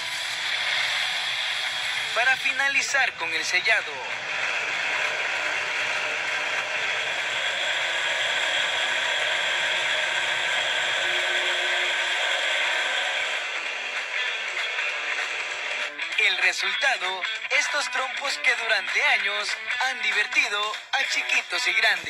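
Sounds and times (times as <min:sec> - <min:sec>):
sanding pad friction hiss: 0:00.0 - 0:02.4, 0:04.1 - 0:15.9
wood lathe running: 0:00.0 - 0:16.0.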